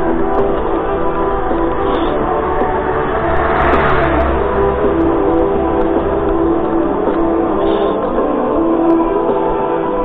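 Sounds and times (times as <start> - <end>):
background music: 0.0 - 10.0
car passing by: 0.7 - 8.1.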